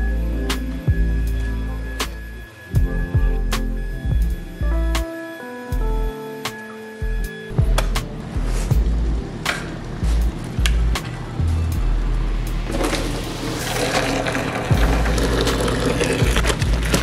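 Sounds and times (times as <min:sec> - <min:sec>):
background music with steady beat: 0:00.0 - 0:17.0
water pouring into plastic bucket: 0:12.7 - 0:17.0.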